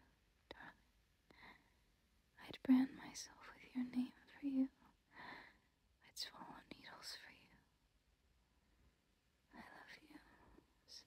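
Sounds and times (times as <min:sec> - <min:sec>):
woman whispering: 0:00.5 - 0:00.8, 0:02.4 - 0:04.9, 0:06.0 - 0:07.7, 0:09.5 - 0:11.0.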